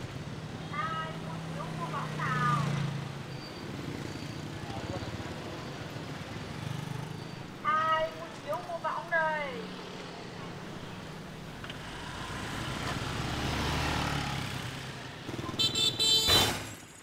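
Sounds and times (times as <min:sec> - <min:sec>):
vehicle passing: 0:07.8 - 0:15.4.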